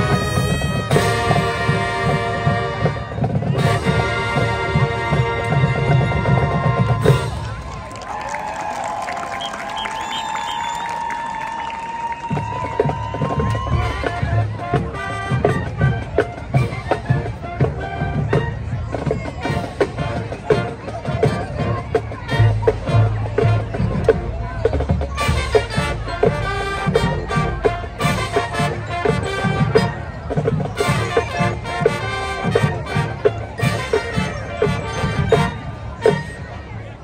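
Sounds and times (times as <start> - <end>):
crowd cheering and yelling: 0.0 - 37.0
marching band playing: 0.0 - 37.0.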